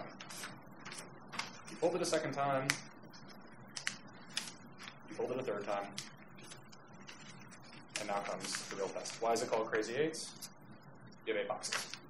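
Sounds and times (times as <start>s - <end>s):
paper being folded and creased: 0.1s - 1.8s, 2.7s - 5.1s, 6.0s - 9.6s.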